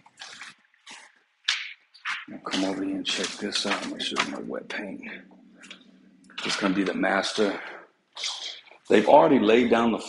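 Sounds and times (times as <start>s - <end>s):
footsteps on crinkling paper: 0.0s - 1.2s, 2.0s - 4.4s.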